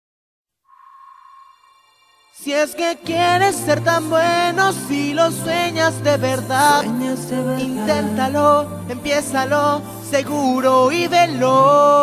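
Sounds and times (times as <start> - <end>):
clear ringing tone: 0.7 - 3.1.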